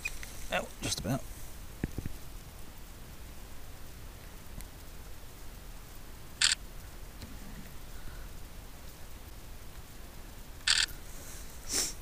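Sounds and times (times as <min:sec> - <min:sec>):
camera shutter clicks: 0:06.4 - 0:06.6, 0:10.7 - 0:10.9.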